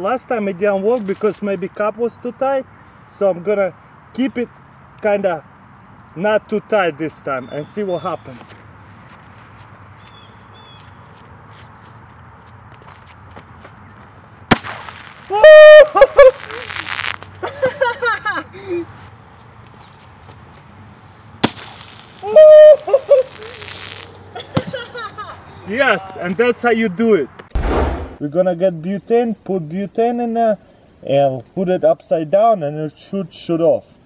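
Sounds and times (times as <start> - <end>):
sharp pop: 14.5 - 15.3, 21.4 - 22.2, 27.5 - 28.2
foam hissing: 14.5 - 17.3, 21.4 - 24.2
person shouting: 15.3 - 16.7, 22.2 - 23.2.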